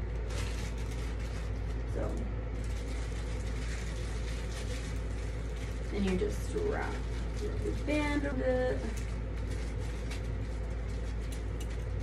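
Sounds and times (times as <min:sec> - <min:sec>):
plastic bag rustling: 0:00.0 - 0:12.0
steady low hum: 0:00.0 - 0:12.0.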